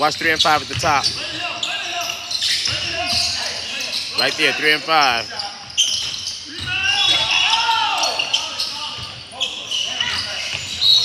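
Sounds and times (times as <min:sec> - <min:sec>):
sneakers squeaking: 0:00.0 - 0:11.0
voices echoing in a gym: 0:00.0 - 0:11.0
basketball bouncing on court: 0:00.2 - 0:01.4, 0:05.8 - 0:07.3.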